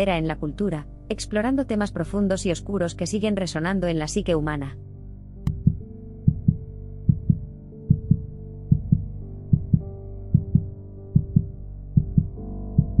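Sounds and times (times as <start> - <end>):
heartbeat-like double thump: 5.5 - 13.0.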